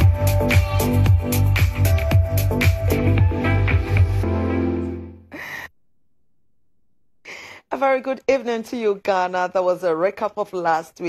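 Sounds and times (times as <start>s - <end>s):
music: 0.0s - 5.3s
person gasping breath: 5.3s - 5.8s, 7.2s - 7.7s.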